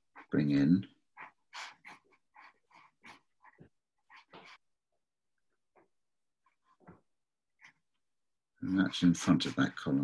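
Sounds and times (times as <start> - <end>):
pen scratching on paper: 0.0 - 4.8, 6.2 - 10.0.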